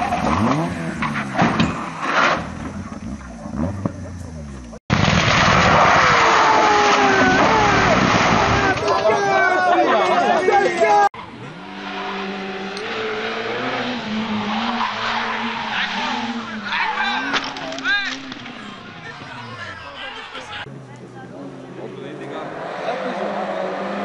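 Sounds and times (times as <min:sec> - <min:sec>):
tyre squeal and skidding: 0:00.0 - 0:04.4, 0:10.8 - 0:20.6
rally car engines accelerating: 0:00.0 - 0:04.8, 0:09.5 - 0:24.0.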